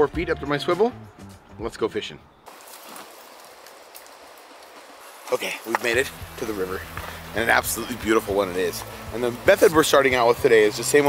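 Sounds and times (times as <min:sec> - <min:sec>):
stream water rushing: 0:02.5 - 0:11.0.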